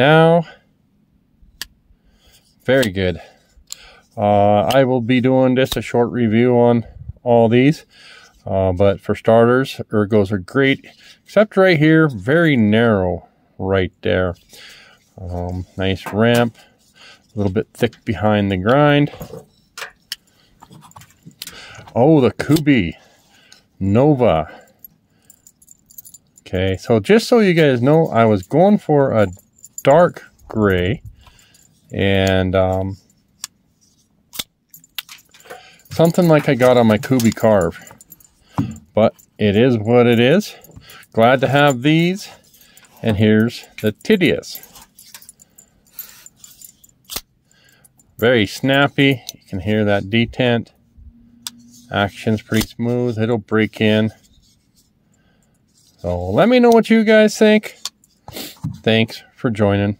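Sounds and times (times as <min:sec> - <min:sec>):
knife handling sounds: 0:29.2 - 0:47.3, 0:51.4 - 0:54.8.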